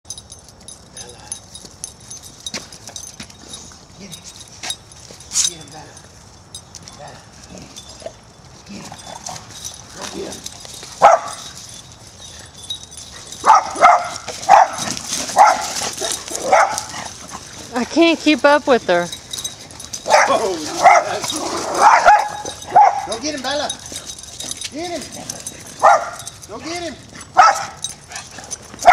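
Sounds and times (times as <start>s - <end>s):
dogs barking: 11.0s - 11.5s, 13.4s - 17.6s, 19.4s - 28.9s
footsteps crunching dry leaves: 19.7s - 23.4s.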